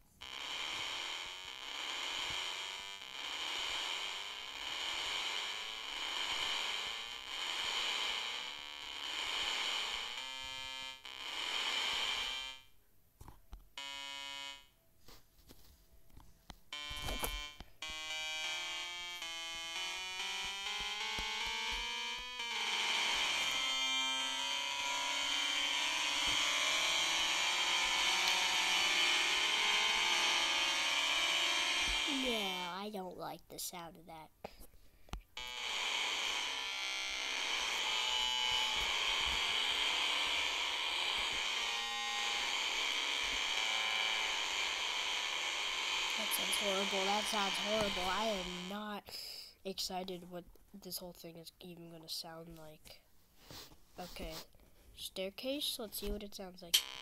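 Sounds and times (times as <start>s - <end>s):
clashing synth note cluster: 16.8s - 32.7s, 35.4s - 48.8s
synth rising note runs: 17.9s - 32.2s.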